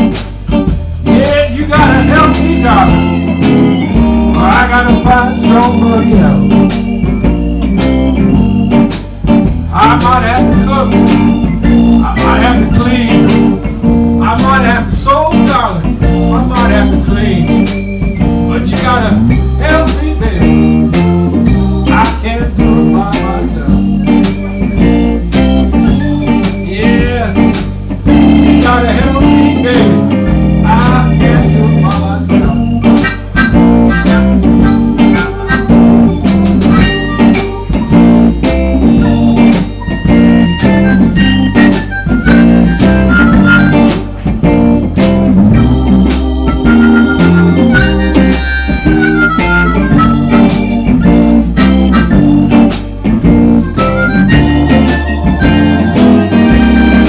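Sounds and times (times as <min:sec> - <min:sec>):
bass: 0:00.0 - 0:57.0
drums: 0:00.0 - 0:57.0
electric guitar: 0:00.0 - 0:57.0
electric keyboard: 0:00.0 - 0:57.0
harmonica solo with bent notes: 0:01.5 - 0:15.0, 0:16.0 - 0:57.0.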